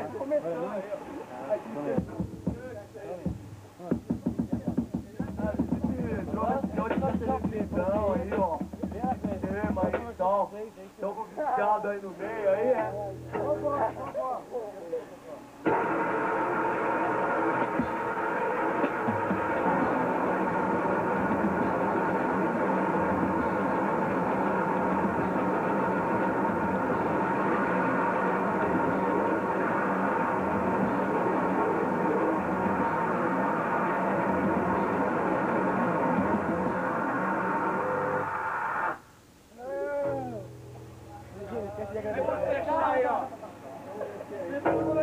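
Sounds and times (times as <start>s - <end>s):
distorted electric guitar noise: 1.4s - 10.3s, 12.5s - 14.6s, 15.4s - 43.4s, 44.0s - 45.0s.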